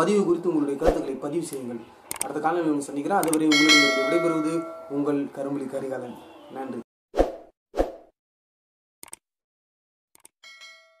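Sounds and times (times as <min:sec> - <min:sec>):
double mouse click: 0:03.2 - 0:03.4
short bell ding: 0:03.5 - 0:05.1, 0:10.4 - 0:11.0.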